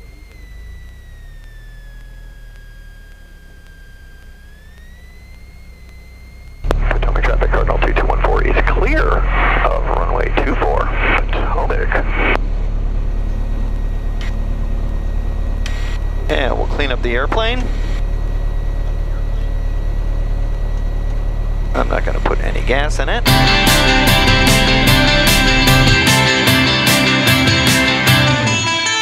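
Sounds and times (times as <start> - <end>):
faint steady whine: 0.0 - 28.7
low aircraft engine drone: 0.0 - 29.0
person speaking: 6.7 - 12.1.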